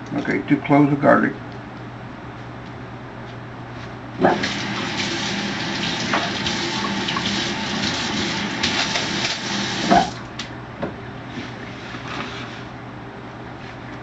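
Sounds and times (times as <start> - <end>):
tap water running into sink: 4.2 - 10.2.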